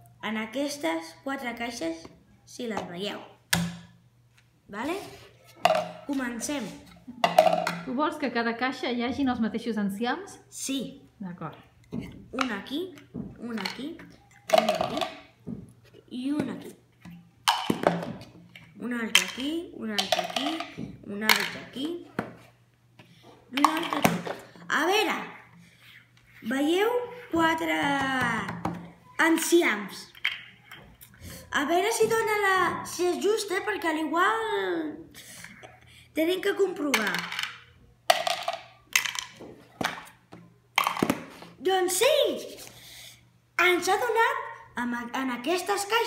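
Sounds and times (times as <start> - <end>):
bottle caps clattering into jars: 5.6 - 6.1, 7.2 - 7.9, 13.5 - 15.2, 17.5 - 18.2, 19.2 - 21.7, 23.6 - 24.4, 37.0 - 40.1, 40.8 - 41.4
plastic caps clicking against jars: 30.1 - 30.8, 36.9 - 40.2, 40.8 - 41.4.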